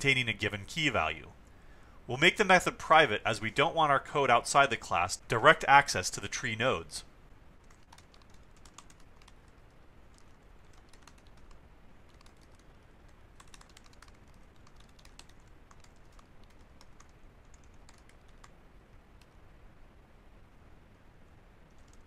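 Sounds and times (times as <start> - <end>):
typing on computer keyboard: 7.6 - 12.7, 13.4 - 18.5, 21.7 - 22.0.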